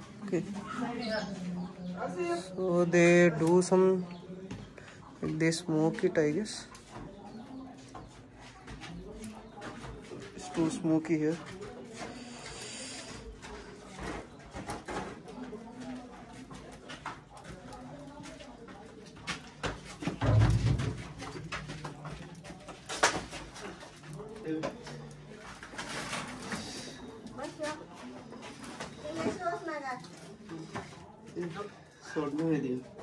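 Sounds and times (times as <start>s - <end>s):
indistinct voices: 0.0s - 32.1s.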